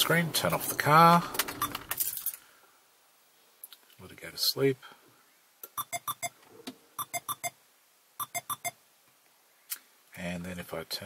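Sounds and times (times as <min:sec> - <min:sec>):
car warning chime beeps: 0:01.6 - 0:01.8, 0:05.8 - 0:06.4, 0:07.0 - 0:07.6, 0:08.2 - 0:08.8.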